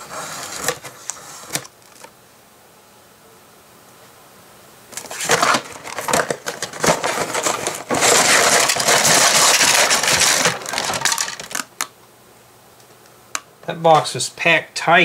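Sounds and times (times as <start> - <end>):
cardboard rustling: 0.0 - 2.1, 4.9 - 11.7
plastic bags crinkling and rattling: 5.0 - 11.9.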